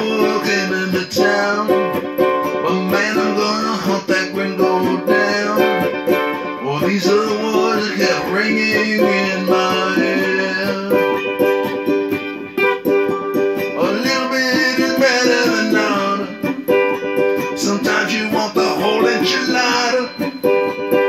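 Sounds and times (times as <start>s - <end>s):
ukulele strumming: 0.0s - 21.0s
whistled melody: 0.0s - 21.0s.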